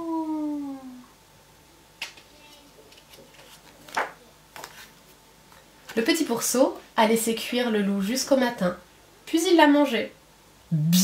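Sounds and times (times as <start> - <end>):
small handling sounds: 2.0 - 6.1.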